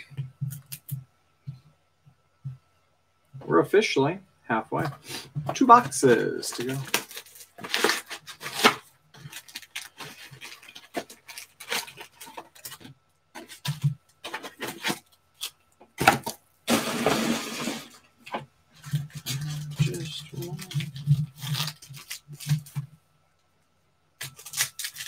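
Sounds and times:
foil wrappers crinkling: 4.9s - 16.4s, 18.7s - 22.9s, 24.2s - 25.0s
cardboard box rustling: 5.4s - 15.0s.

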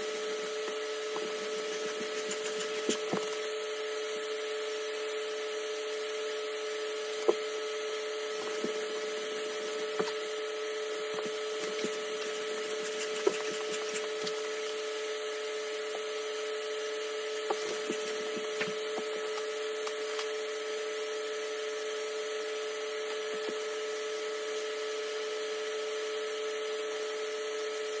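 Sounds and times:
room hum with hiss: 0.0s - 28.0s.

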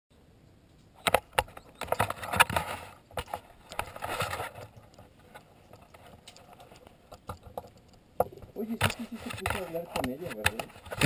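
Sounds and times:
climbing hardware clicks and knocks: 0.7s - 11.0s
handling rustling: 0.8s - 11.0s.

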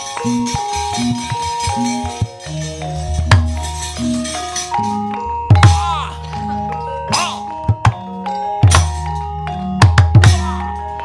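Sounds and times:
gamelan ensemble playing: 0.0s - 11.0s
sharp wooden knocks: 7.5s - 10.5s.

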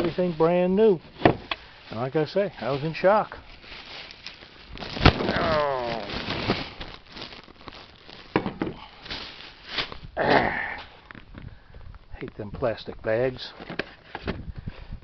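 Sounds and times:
plastic bags rustling: 0.0s - 10.2s.

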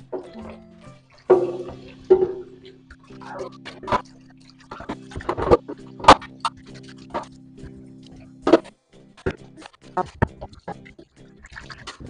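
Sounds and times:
background music: 0.0s - 12.0s
dishes clattering in steel sink: 1.3s - 2.7s.

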